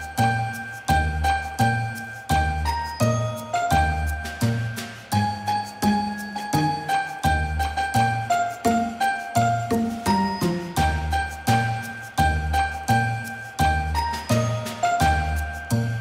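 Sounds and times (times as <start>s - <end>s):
bell-like melody over beat: 0.0s - 16.0s.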